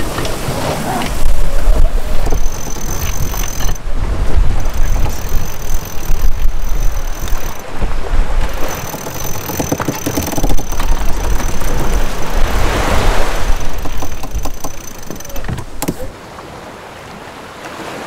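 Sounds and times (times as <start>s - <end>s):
wind buffeting microphone: 0.0s - 16.2s
water rushing along hull: 0.0s - 18.0s
winch clicking rapidly: 1.0s - 3.8s, 4.5s - 16.1s.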